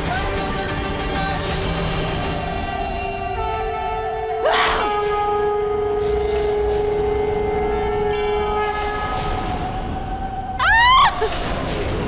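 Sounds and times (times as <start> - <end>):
horn-like drone chords: 0.4 - 12.0.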